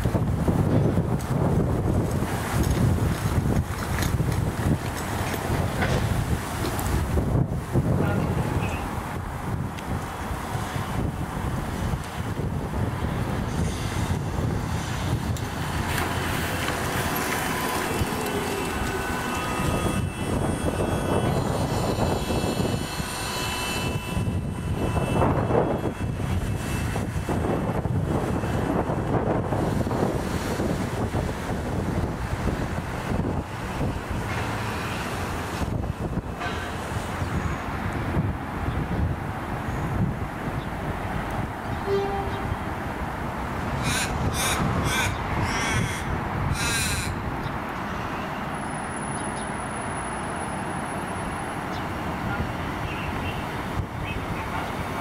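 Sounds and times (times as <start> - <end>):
wind buffeting microphone: 0.0 - 48.6, 49.2 - 55.0
bus engine pulling away: 13.0 - 20.4.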